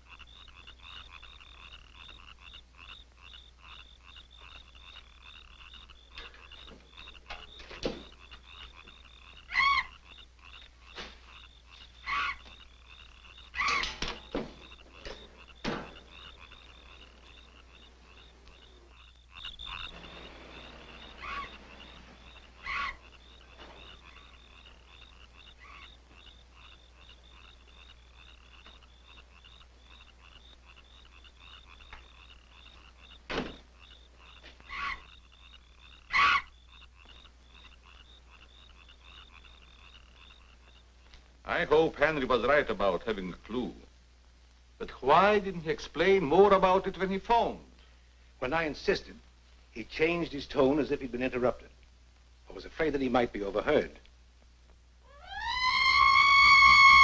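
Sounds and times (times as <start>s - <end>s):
frogs croaking: 0.0s - 57.0s.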